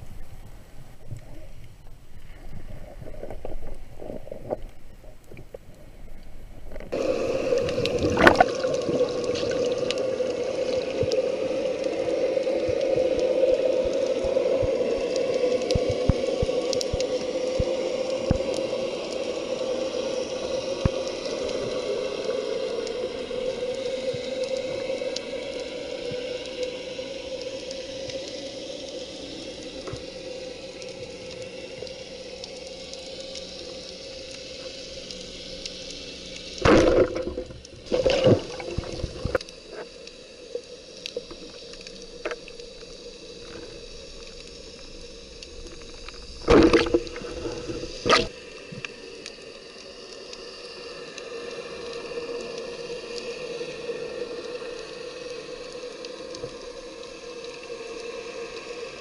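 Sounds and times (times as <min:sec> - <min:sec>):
underwater water rushing: 0:00.0 - 0:59.0
faint clicks: 0:01.0 - 0:19.3, 0:27.4 - 0:58.9
loud bursts of water noise: 0:06.9 - 0:18.1, 0:46.4 - 0:48.5.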